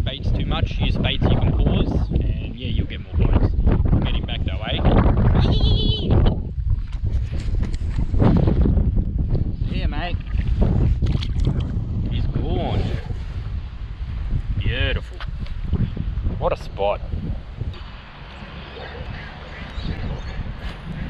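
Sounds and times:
wind buffeting microphone: 0.0s - 21.0s
short voice-like pitched sounds: 5.4s - 6.2s.

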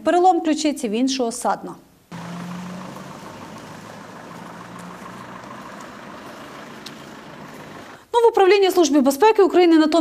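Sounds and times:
vehicle engine idling: 2.1s - 8.0s
street noise: 2.1s - 8.1s.

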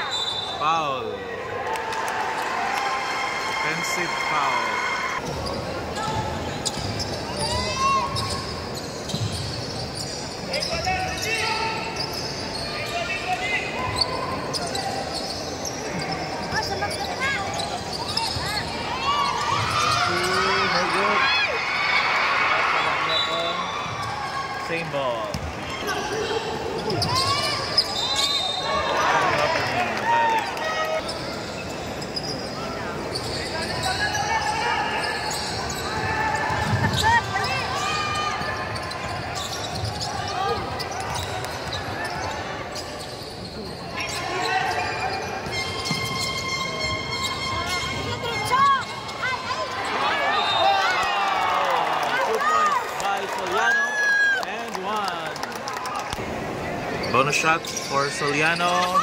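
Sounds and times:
voices of players and spectators: 0.0s - 59.0s
sneakers squeaking: 3.8s - 21.6s, 22.8s - 51.2s, 56.9s - 59.0s.

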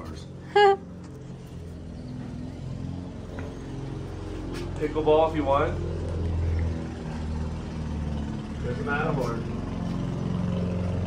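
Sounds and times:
lawnmower engine running: 0.0s - 11.0s.

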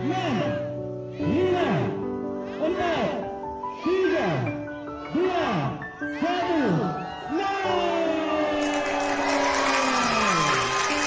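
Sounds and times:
crowd cheering and shouting: 6.5s - 11.0s.

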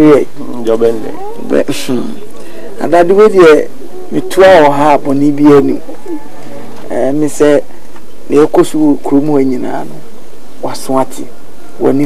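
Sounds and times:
person making harsh vocal sound: 0.9s - 2.0s.

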